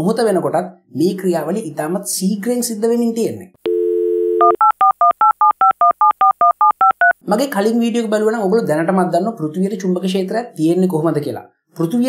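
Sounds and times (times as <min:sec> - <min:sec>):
touch-tone telephone dialing beeps: 0:03.7 - 0:07.2.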